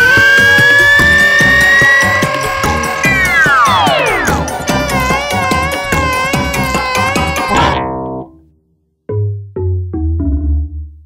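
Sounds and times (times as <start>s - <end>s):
steady electronic beat: 0.0s - 7.7s
synth note rising in pitch: 0.0s - 7.8s.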